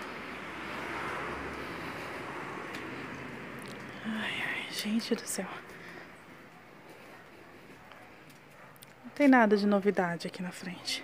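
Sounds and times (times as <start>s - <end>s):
outdoor background rush: 0.0s - 11.0s.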